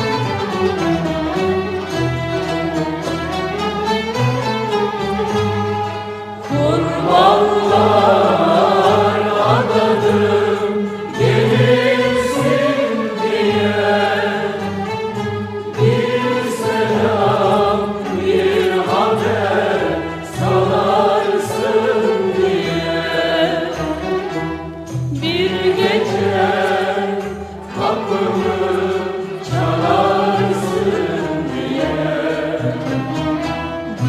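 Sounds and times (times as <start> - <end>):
instrumental ensemble: 0.0 - 34.0
woman singing: 6.5 - 10.2, 25.1 - 26.5.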